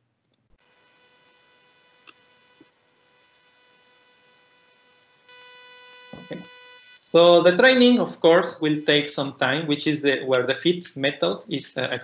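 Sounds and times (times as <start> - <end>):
faint electrical buzz: 0.0 - 12.0.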